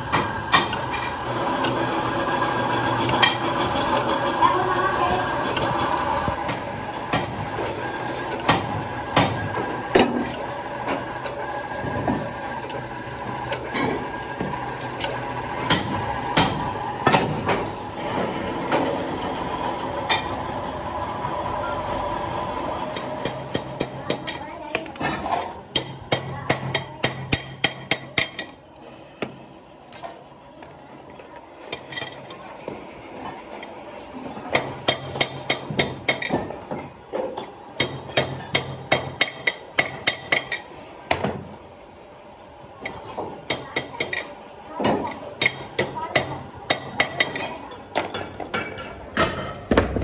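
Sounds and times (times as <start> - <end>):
workshop machinery humming: 0.0 - 50.0.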